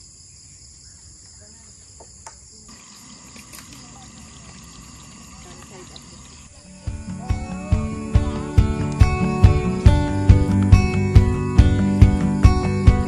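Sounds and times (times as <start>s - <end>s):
insects droning: 0.0s - 13.0s
plucked guitar music: 6.6s - 13.0s.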